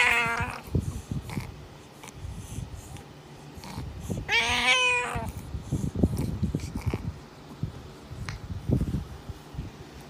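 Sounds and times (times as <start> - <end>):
cat meowing: 0.0 - 0.6, 4.3 - 5.3.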